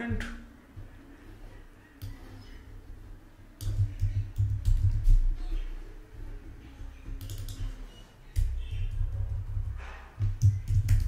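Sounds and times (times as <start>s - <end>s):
keyboard keys clicking: 6.9s - 11.0s.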